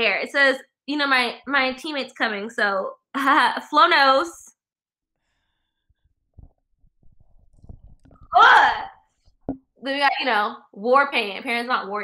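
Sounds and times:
microphone handling noise: 0:05.9 - 0:08.4.

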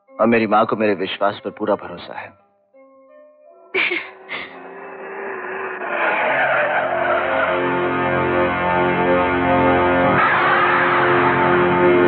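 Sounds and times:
music: 0:00.0 - 0:04.7, 0:07.5 - 0:12.0
car tyres screeching: 0:04.3 - 0:09.2.

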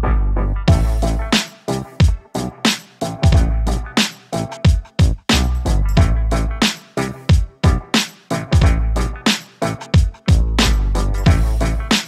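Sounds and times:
funky sampled loop: 0:00.0 - 0:12.0.

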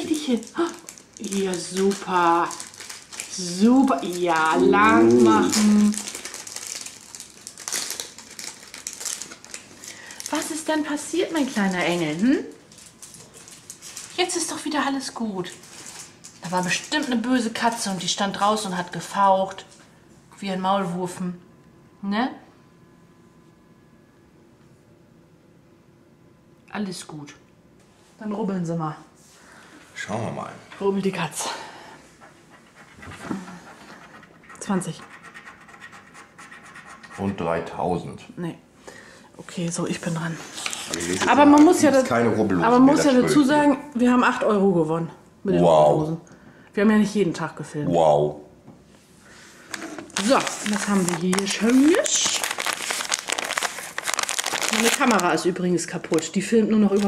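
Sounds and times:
fabric tunnel crinkling: 0:00.1 - 0:10.5, 0:50.2 - 0:55.4.

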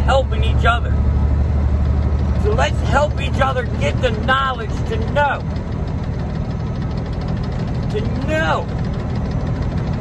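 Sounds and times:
truck engine rumbling: 0:00.0 - 0:10.0.

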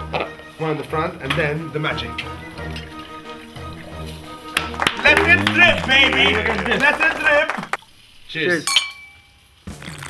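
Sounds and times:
background music: 0:00.0 - 0:07.8.

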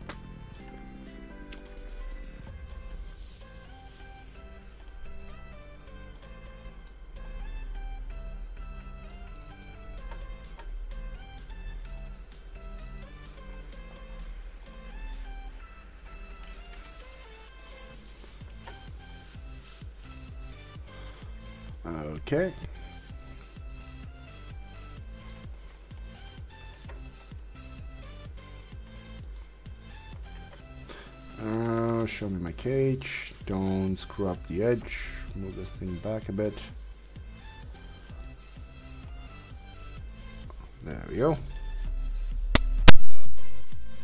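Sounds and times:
background music with bass line: 0:00.0 - 0:44.0.

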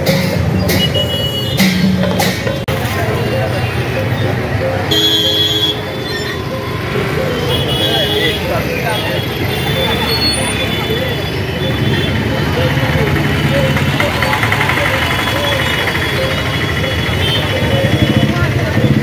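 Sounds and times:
crowd talking: 0:00.0 - 0:19.0
motorcycle traffic: 0:00.0 - 0:19.0
vehicle horn: 0:04.9 - 0:06.0.

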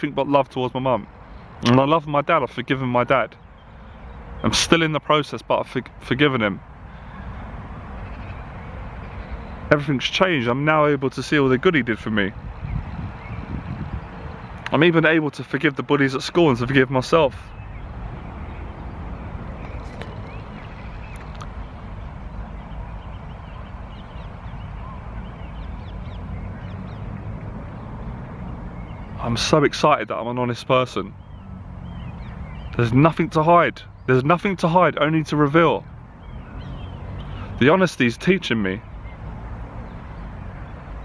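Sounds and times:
thin bird calls: 0:06.8 - 0:09.7, 0:17.0 - 0:27.9, 0:28.6 - 0:40.3
wind buffeting microphone: 0:11.6 - 0:15.2, 0:16.4 - 0:30.0.

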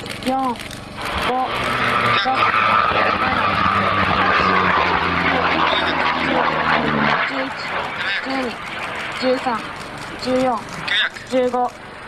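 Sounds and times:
rocket motor firing: 0:00.4 - 0:11.7.

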